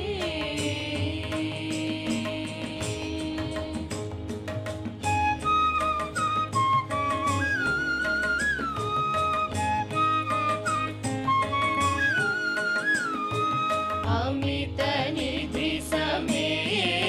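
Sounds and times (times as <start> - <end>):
light percussion strokes: 0.0 - 17.0
flute melody: 5.0 - 14.3.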